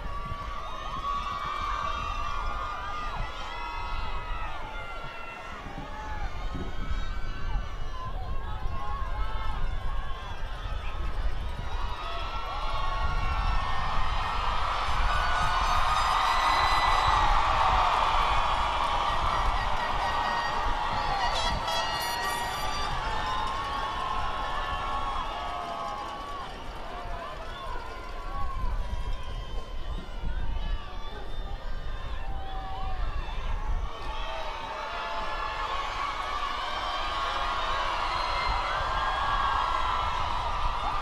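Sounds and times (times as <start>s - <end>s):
crowd cheering and calling out: 0.0s - 41.0s.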